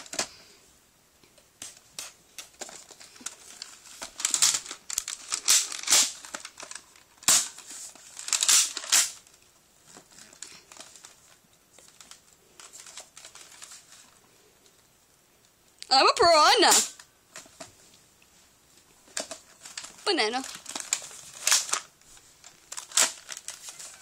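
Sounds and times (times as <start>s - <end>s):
rustling crinkling handling noise: 1.2s - 14.9s, 16.3s - 24.0s.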